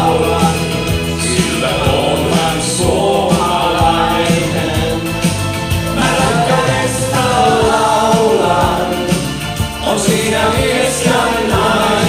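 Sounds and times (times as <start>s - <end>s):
band with steady drum beat: 0.0s - 12.0s
choir-like backing voices: 0.0s - 12.0s
lead vocal singing: 0.0s - 12.0s.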